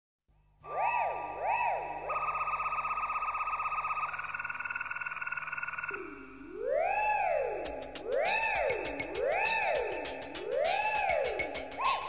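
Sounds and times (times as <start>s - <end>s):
pulsing synthesizer tone: 0.6s - 12.0s.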